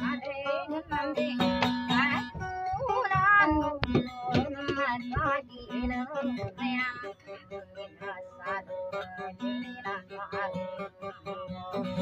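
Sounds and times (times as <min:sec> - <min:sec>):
strummed acoustic guitar: 0:00.0 - 0:12.0
woman singing: 0:00.0 - 0:12.0.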